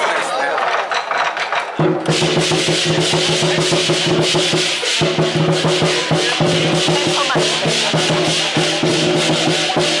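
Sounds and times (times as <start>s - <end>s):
cymbals clashing: 1.8s - 10.0s
drum beating fast: 1.8s - 10.0s.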